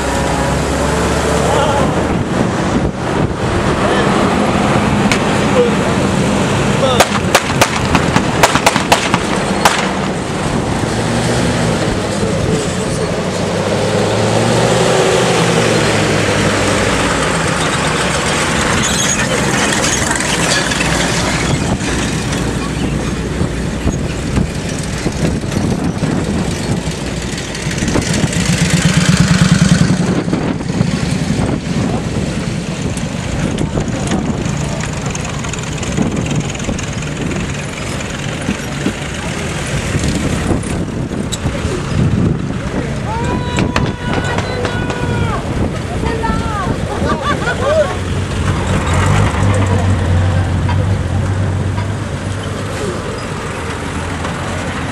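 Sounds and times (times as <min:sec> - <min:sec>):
vehicle engines driving past: 0:00.0 - 0:54.9.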